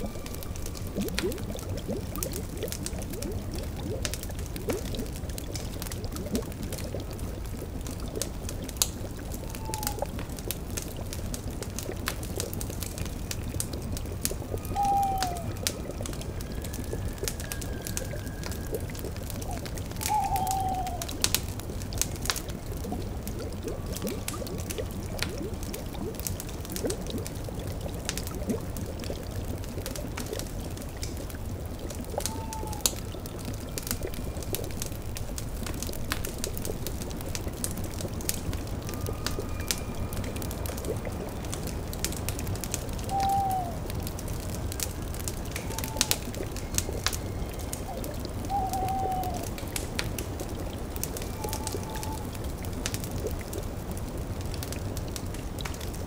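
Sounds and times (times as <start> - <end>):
cauldron bubbling: 0.0 - 56.0
fire crackling: 0.0 - 56.0
owl hooting: 9.4 - 10.1, 14.6 - 18.8, 19.4 - 21.2, 32.3 - 32.9, 43.0 - 43.9, 45.5 - 46.4, 47.2 - 49.6, 51.2 - 52.3.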